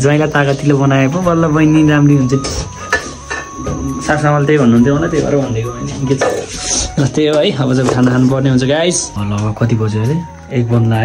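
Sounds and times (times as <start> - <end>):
spoon and dishes clattering: 2.4 - 3.7, 6.1 - 6.6.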